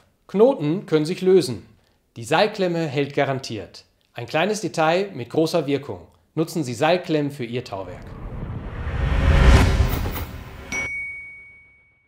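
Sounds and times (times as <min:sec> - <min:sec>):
rushing sweep: 0:07.8 - 0:10.9
bright chime: 0:10.7 - 0:12.0.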